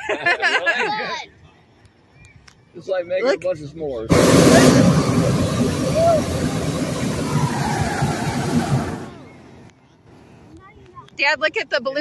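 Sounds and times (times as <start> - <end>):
propane burner rushing: 4.1 - 9.7.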